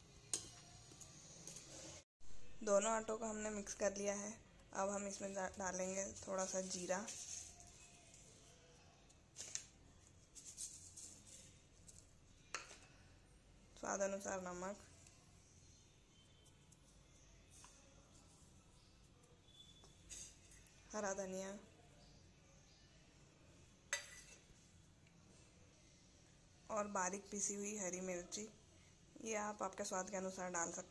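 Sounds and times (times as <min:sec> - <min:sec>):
metal bowl clinking on plate: 0:23.9 - 0:24.4.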